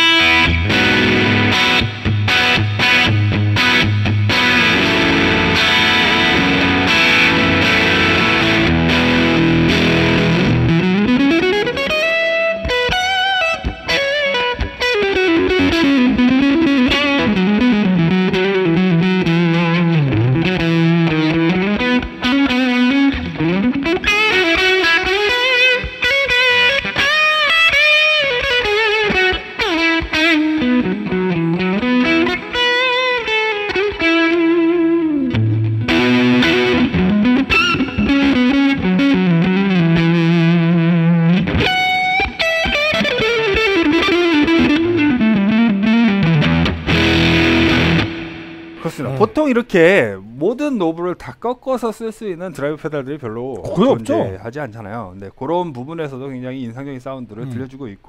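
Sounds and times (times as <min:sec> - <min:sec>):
overdriven electric guitar: 0:00.0 - 0:49.4.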